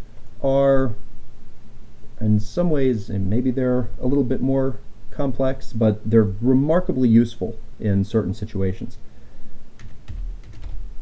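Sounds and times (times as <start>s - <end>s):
keyboard keys clicking: 9.8s - 10.9s.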